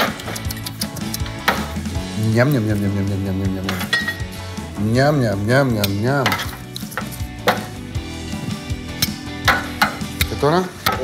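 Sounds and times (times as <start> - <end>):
metal tongs knocking on frying pan: 9.4 - 10.2.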